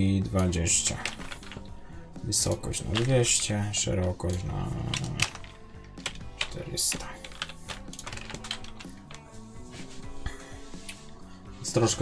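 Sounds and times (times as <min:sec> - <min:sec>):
computer keyboard typing: 0:00.8 - 0:01.7, 0:02.5 - 0:09.3.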